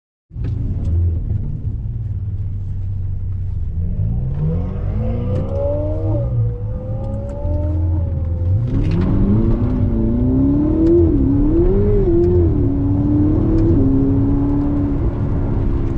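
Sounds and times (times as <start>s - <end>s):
car engine rumble from inside cabin: 0.3s - 15.9s.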